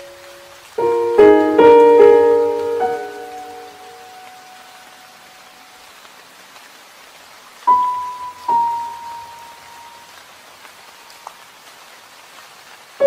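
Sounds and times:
slow piano notes: 0.0 - 5.8, 7.7 - 10.1
rain hissing: 0.0 - 13.0.

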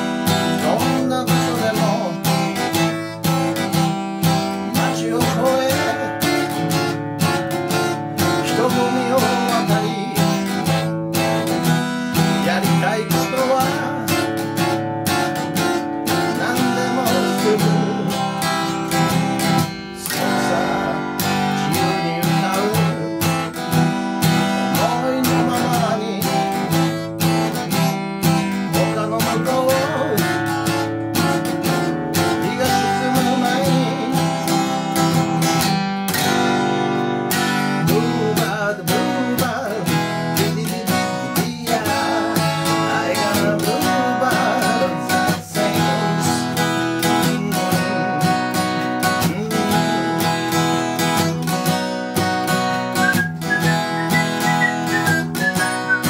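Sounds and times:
acoustic guitar strummed in chords: 0.0 - 56.0
man singing: 0.0 - 56.0.

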